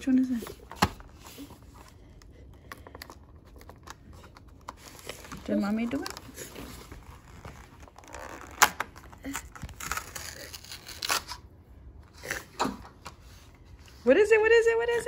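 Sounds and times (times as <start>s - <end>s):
cardboard scratching and tearing: 6.3s - 11.4s.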